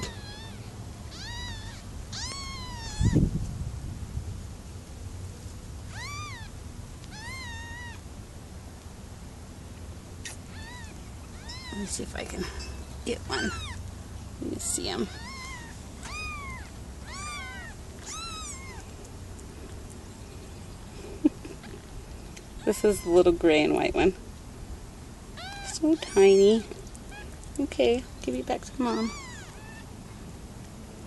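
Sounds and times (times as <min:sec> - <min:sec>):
kitten mewing: 0:00.0 - 0:03.2, 0:05.9 - 0:06.5, 0:07.1 - 0:08.0, 0:10.2 - 0:11.9, 0:13.3 - 0:13.8, 0:15.1 - 0:18.9, 0:28.9 - 0:29.8.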